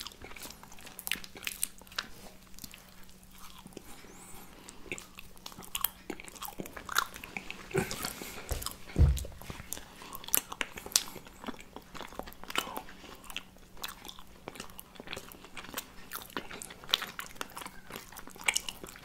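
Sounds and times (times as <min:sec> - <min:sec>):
people chewing crisp gingerbread: 0:00.0 - 0:19.0
low thump: 0:08.6 - 0:09.5.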